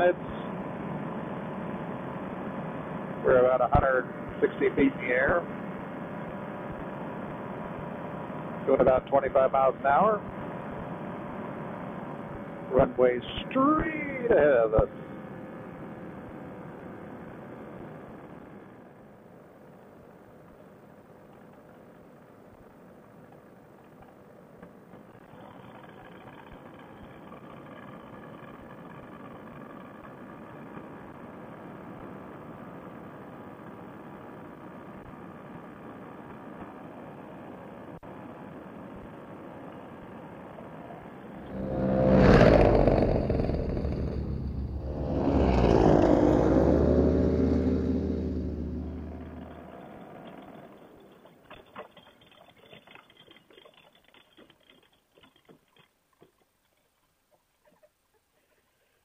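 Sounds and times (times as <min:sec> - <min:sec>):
two-stroke engine running: 0:25.0 - 0:31.4.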